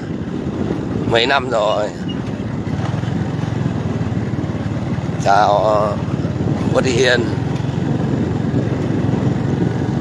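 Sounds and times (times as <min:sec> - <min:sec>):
motorbike engine running: 0:00.0 - 0:10.0.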